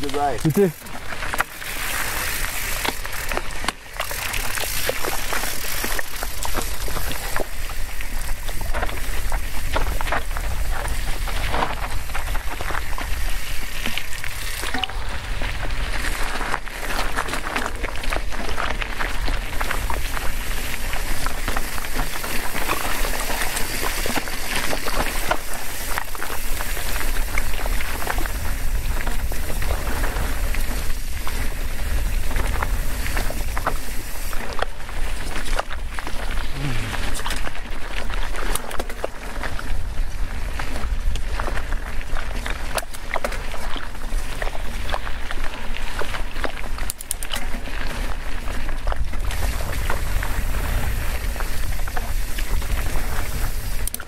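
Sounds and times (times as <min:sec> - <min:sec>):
bike rattling over bumps: 0:00.0 - 0:54.0
tyres crunching over gravel: 0:00.0 - 0:54.0
low wind rumble on microphone: 0:06.1 - 0:46.8, 0:47.5 - 0:54.0.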